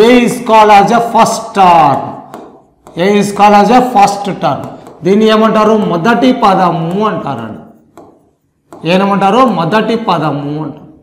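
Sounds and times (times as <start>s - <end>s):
man speaking: 0.0s - 2.3s, 2.9s - 7.9s, 8.8s - 11.0s
marker tapping on whiteboard: 1.8s - 9.4s.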